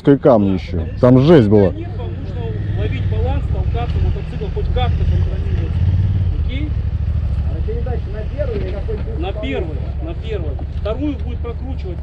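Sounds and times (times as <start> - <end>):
motorcycle engines idling: 0.0 - 12.0.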